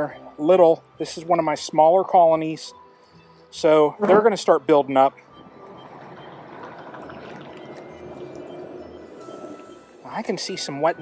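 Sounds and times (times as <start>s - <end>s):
soft background music: 0.0s - 11.0s
honey bees humming: 5.2s - 11.0s.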